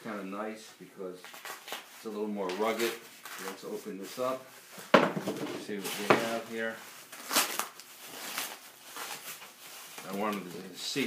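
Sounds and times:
packaging wrap rustling: 0:00.1 - 0:11.0.

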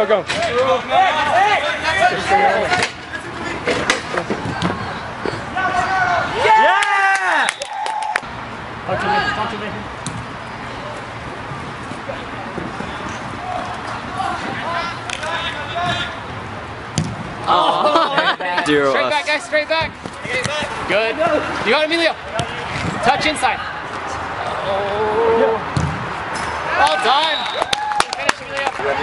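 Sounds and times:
outdoor background noise: 0:00.0 - 0:29.0
distant players shouting: 0:03.6 - 0:08.2, 0:12.1 - 0:16.4.

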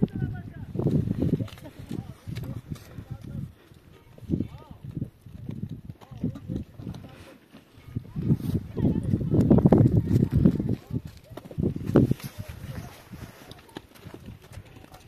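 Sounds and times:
people talking: 0:00.0 - 0:05.1, 0:05.9 - 0:15.0.

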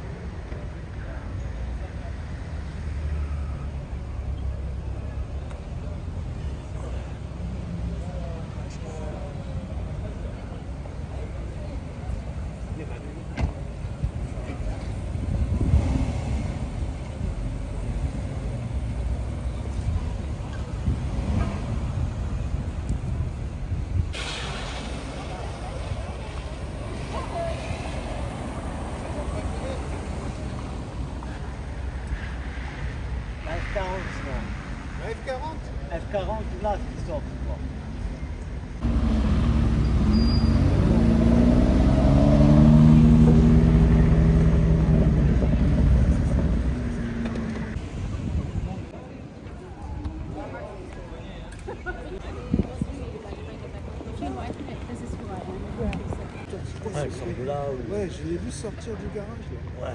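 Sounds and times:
street rumble: 0:00.0 - 0:59.9
car pulling away slowly: 0:38.8 - 0:47.8
loud car engine revving: 0:38.8 - 0:47.8.

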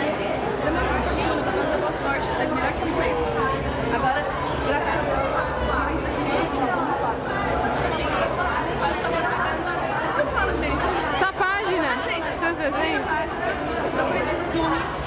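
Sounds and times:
crowd chatter in a hall: 0:00.0 - 0:15.0
women talking and laughing: 0:00.0 - 0:15.0.

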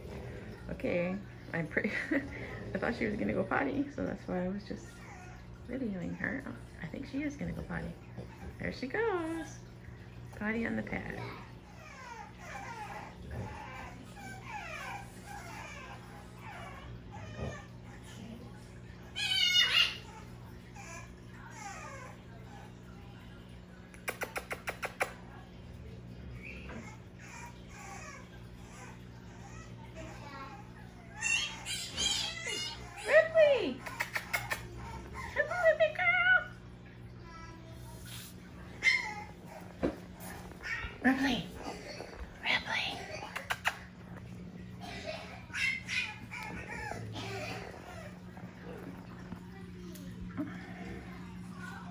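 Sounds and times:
puppy whining: 0:04.8 - 0:06.4, 0:11.0 - 0:23.0, 0:26.1 - 0:51.9.

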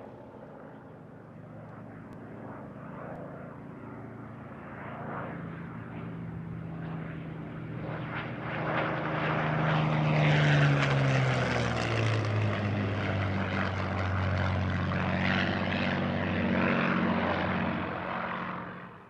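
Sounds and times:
propeller plane engine passing: 0:00.0 - 0:19.0.

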